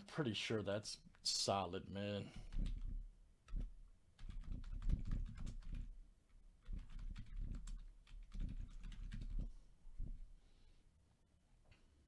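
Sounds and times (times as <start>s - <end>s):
keyboard typing: 2.5s - 5.9s, 6.6s - 9.5s.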